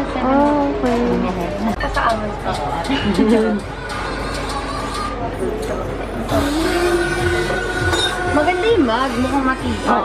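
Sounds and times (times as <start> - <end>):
background music: 6.2 - 8.9
people talking: 8.3 - 10.0.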